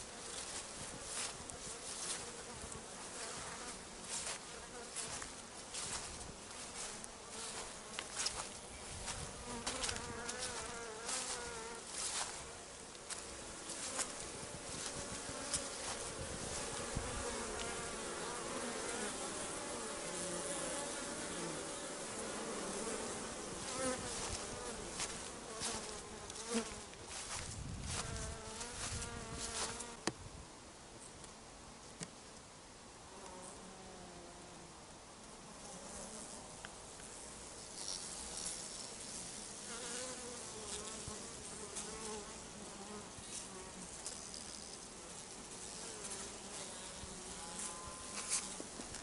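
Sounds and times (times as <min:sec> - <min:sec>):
bees buzzing: 0:00.0 - 0:30.0, 0:37.6 - 0:49.0.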